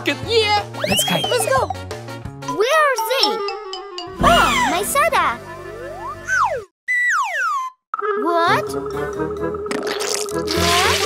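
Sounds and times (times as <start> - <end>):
background music: 0.0 - 6.6, 8.5 - 11.0
cartoon glide sound effect: 4.2 - 5.0, 5.7 - 8.9.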